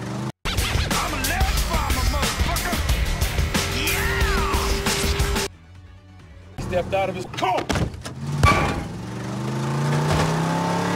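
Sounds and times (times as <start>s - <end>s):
car engine humming: 1.2s - 5.5s, 7.9s - 10.9s.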